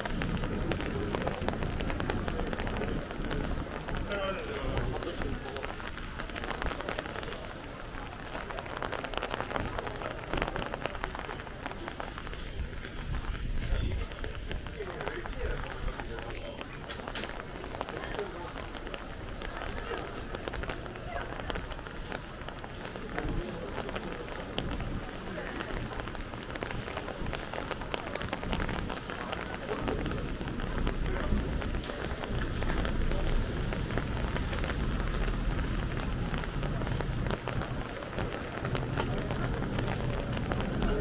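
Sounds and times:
faint voices: 0:00.0 - 0:41.0
footsteps on wet pavement: 0:00.0 - 0:41.0
rain on a wet street: 0:00.0 - 0:41.0.

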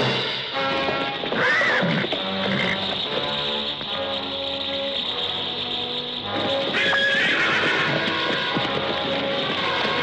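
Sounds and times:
film score music: 0:00.0 - 0:10.0
horses whinnying: 0:00.9 - 0:04.1, 0:06.2 - 0:10.0.

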